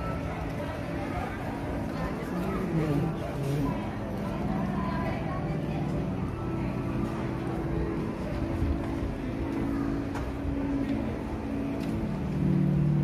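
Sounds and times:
hall background noise: 0.0 - 13.0.

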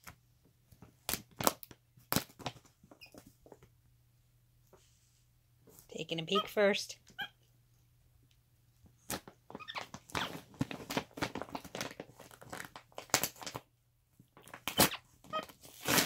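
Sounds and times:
plastic bag crinkling: 9.2 - 13.7.

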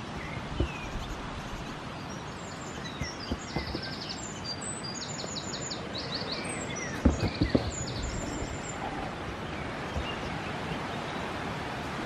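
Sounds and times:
small birds chirping: 0.0 - 11.4
outdoor background hiss: 0.0 - 12.0
soft knocks: 3.0 - 4.0, 7.0 - 7.9.

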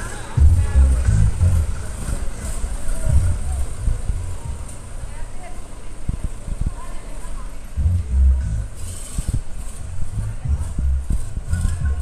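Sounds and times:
loud music with deep bass beats: 0.0 - 4.8, 7.8 - 12.0.

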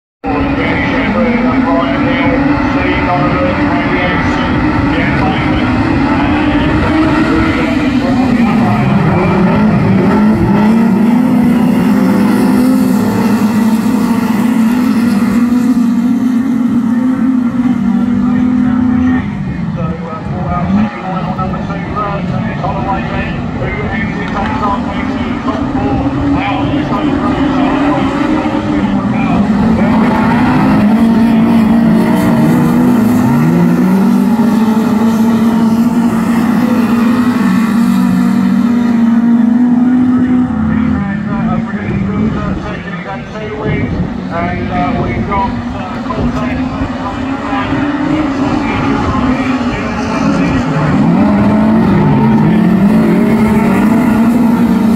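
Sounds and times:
race car engines at high revs: 0.2 - 54.9.

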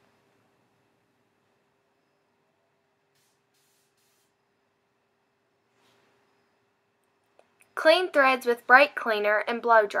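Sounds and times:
faint short hisses: 3.1 - 4.4.

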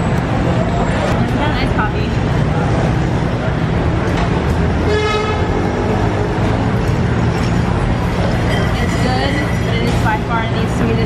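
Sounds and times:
city street traffic: 0.0 - 11.0
vehicle horn tooting: 4.8 - 5.5.

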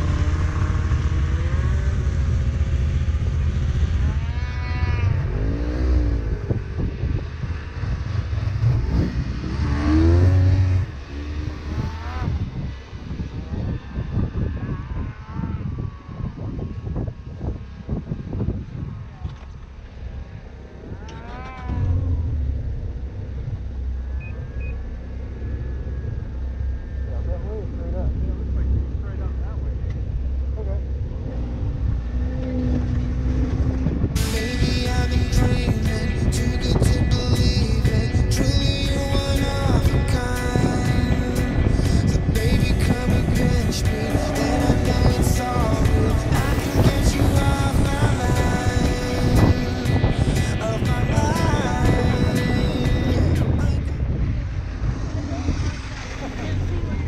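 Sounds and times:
snowmobile engine revving: 0.0 - 16.8, 40.2 - 53.8, 54.4 - 57.0
music with steady beat: 34.2 - 53.6.

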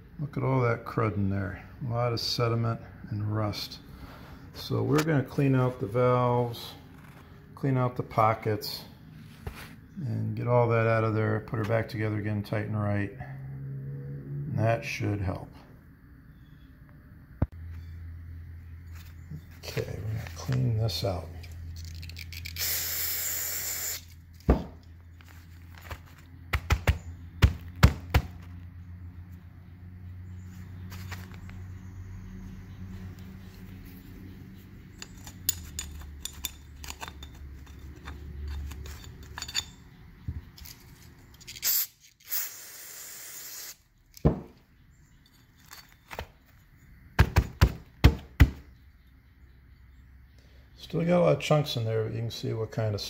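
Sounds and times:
metal pick scraping metal: 34.9 - 41.7.

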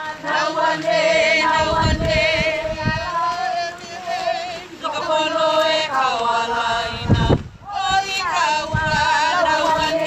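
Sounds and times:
voices singing a slow chant: 0.0 - 10.0.

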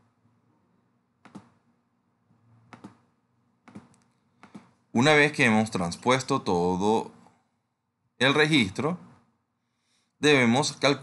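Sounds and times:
computer mouse clicking: 1.2 - 1.6, 2.7 - 3.0, 3.6 - 4.7.

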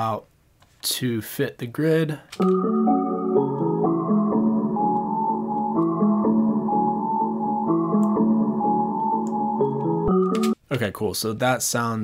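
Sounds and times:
moving bass line: 2.4 - 10.5
keyboard chords sample loop: 2.4 - 10.6.

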